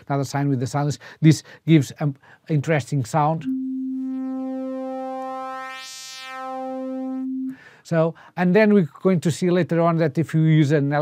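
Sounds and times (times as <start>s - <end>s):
synthesizer sine tone with buzzy overtones: 3.4s - 7.6s.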